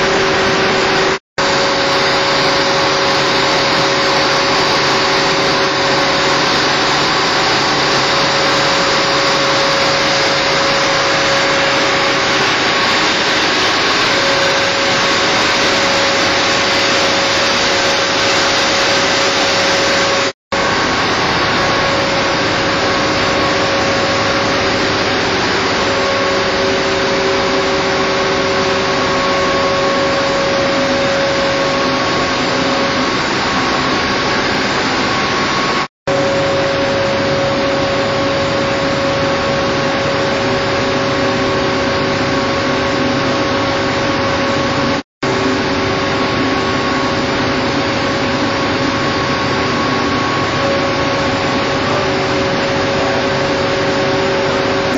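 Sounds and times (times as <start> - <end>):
engine room machinery running: 0.0 - 54.9
steady machine tones: 0.0 - 54.9.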